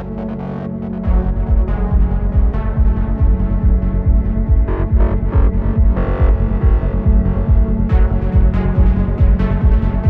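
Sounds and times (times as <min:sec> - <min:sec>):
rolling bass line: 0:00.0 - 0:10.0
fast kick drum: 0:01.1 - 0:10.0.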